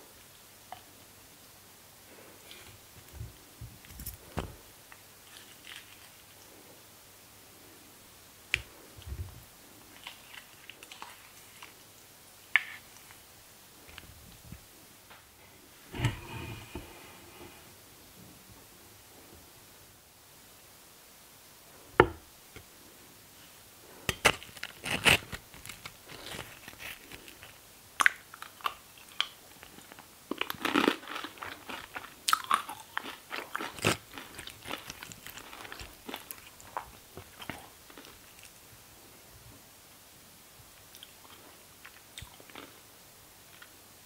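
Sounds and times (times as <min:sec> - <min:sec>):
tortilla chips crackling: 0:24.1 - 0:38.6.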